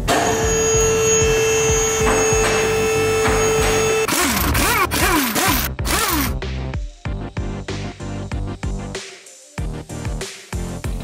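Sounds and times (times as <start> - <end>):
impact wrench whining: 0.0 - 6.4
background music with beat: 0.0 - 11.0.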